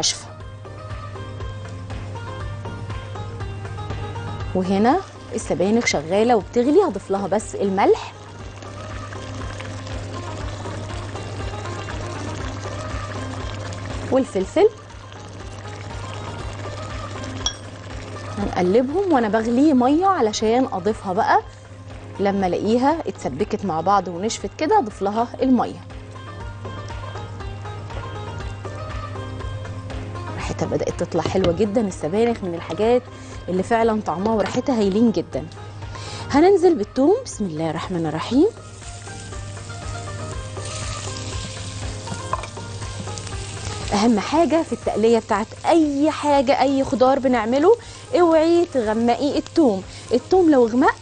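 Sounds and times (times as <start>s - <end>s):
garlic sizzling in a frying pan: 4.6s - 21.8s, 30.4s - 51.0s
stew bubbling in a pot: 7.3s - 19.6s
metal spoon clinking on pot: 17.4s - 17.7s.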